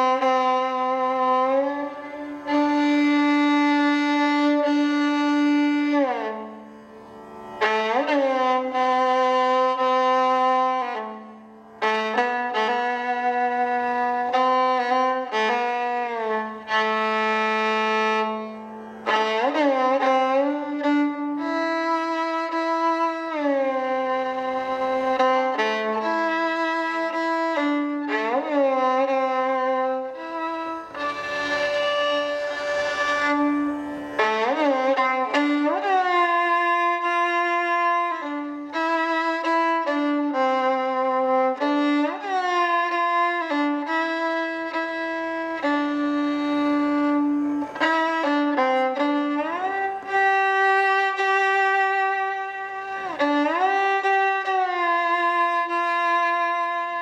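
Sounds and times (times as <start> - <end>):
solo violin slow melody: 0.0 - 57.0.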